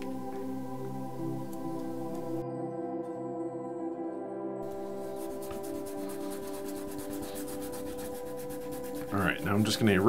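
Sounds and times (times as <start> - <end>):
soft ambient music: 0.0 - 10.0
rubbing strokes on paper: 4.6 - 10.0.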